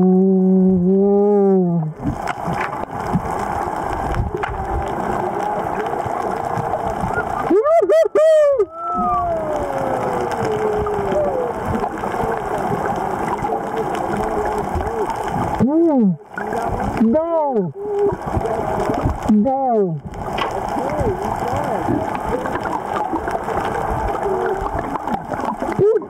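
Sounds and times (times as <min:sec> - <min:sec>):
underwater rushing and gurgling: 0:00.0 - 0:26.0
muffled vocal squeals underwater: 0:05.0 - 0:19.7, 0:20.6 - 0:26.0
long falling cry: 0:07.4 - 0:11.8.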